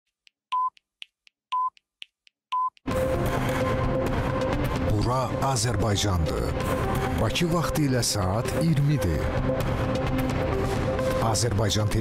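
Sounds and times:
short high beeps: 0:02.5 - 0:02.8
news theme music: 0:02.9 - 0:12.0.

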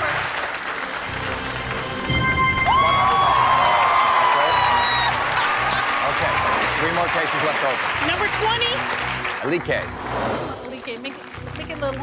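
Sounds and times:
background music: 0:00.0 - 0:12.0
studio audience applauding: 0:00.0 - 0:12.0
whoops: 0:02.4 - 0:06.6.

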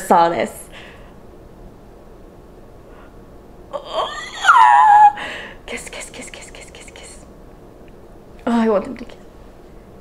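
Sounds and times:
woman crying: 0:03.7 - 0:05.5
woman whimpering: 0:03.7 - 0:05.5.

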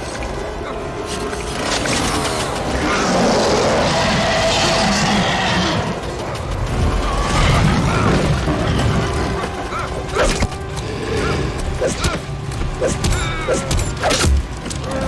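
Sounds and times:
dramatic orchestral score: 0:00.0 - 0:15.0.

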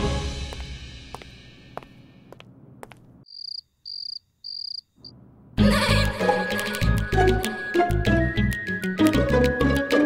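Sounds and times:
cricket chirping: 0:03.2 - 0:05.2.

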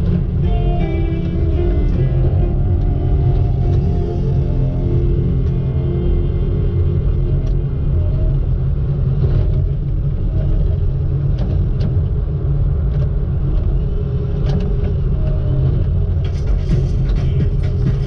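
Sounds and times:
loader engine rumbling: 0:00.0 - 0:12.0, 0:13.7 - 0:18.0.

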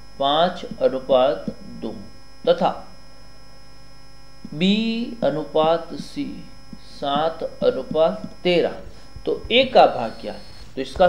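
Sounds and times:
electrical mains hum: 0:00.0 - 0:11.0
faint high whine: 0:00.0 - 0:11.0
voice saying a syllable: 0:00.2 - 0:02.9, 0:04.5 - 0:11.0.

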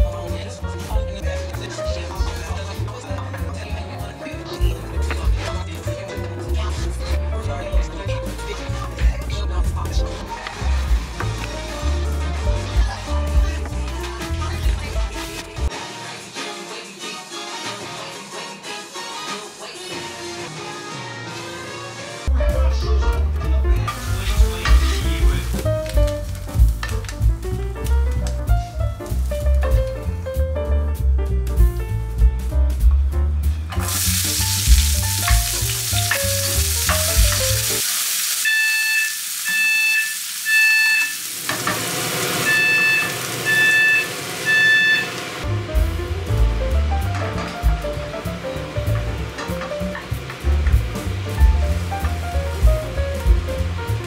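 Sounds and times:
music with bass beat: 0:00.0 - 0:15.7, 0:22.3 - 0:37.8, 0:45.4 - 0:54.0
onions sizzling in a pan: 0:23.8 - 0:27.5, 0:33.8 - 0:47.0, 0:47.6 - 0:54.0
smoke alarm beeping: 0:38.4 - 0:41.5, 0:42.2 - 0:45.4.

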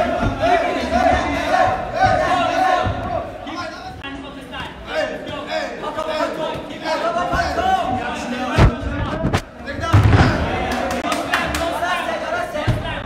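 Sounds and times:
people shouting: 0:00.0 - 0:03.9.

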